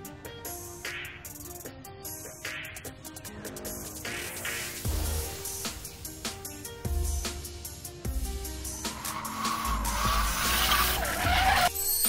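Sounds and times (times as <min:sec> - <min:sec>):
background music: 0:00.0 - 0:12.0
car tyres squealing: 0:08.7 - 0:11.8.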